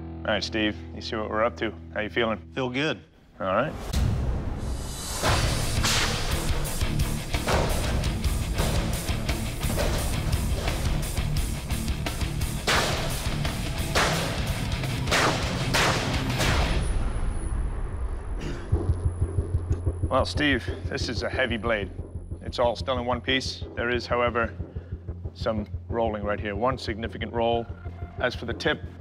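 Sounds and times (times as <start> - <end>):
background music with pulsing bass: 5.2 - 29.0.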